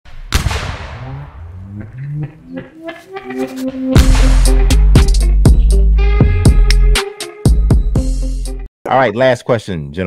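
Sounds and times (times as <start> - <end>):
low held notes: 0.8 - 7.0
crash hit with ringing tail: 4.0 - 4.6.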